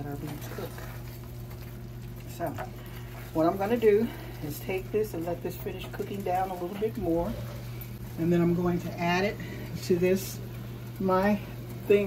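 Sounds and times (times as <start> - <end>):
wooden spoon stirring: 0.0 - 9.2
beef simmering in a saucepan: 0.0 - 12.0
low electrical hum: 0.0 - 12.0.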